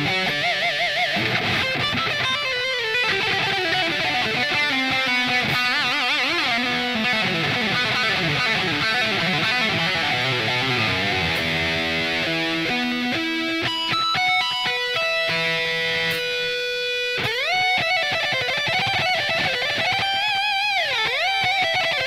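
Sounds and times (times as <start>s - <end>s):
electric guitar metal lead: 0.0s - 22.0s.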